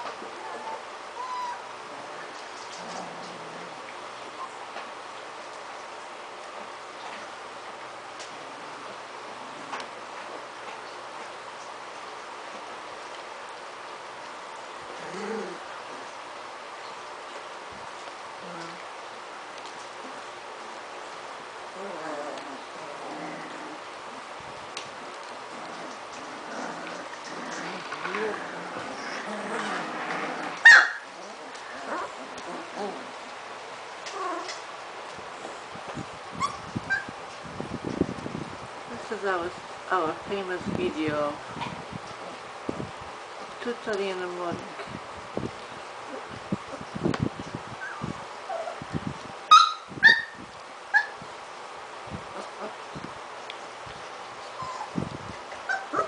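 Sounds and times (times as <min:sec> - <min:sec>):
puppy yelping: 0:00.4 - 0:01.7, 0:30.5 - 0:31.1, 0:36.4 - 0:37.1, 0:49.5 - 0:51.2, 0:54.5 - 0:55.0, 0:55.6 - 0:56.0
puppies squeaking and whimpering: 0:00.4 - 0:02.2, 0:30.5 - 0:33.2, 0:36.4 - 0:37.2, 0:47.8 - 0:48.8, 0:49.5 - 0:51.2, 0:54.4 - 0:56.0.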